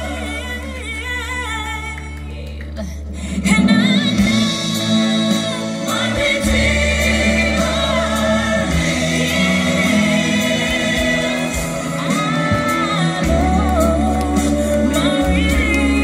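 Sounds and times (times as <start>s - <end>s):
low bass notes: 0.0s - 16.0s
choir singing gospel song: 3.6s - 16.0s.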